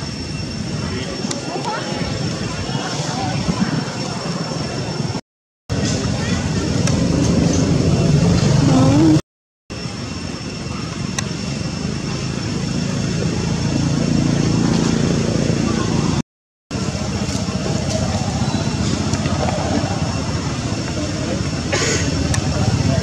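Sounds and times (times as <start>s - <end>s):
indistinct voices: 8.2s - 9.2s.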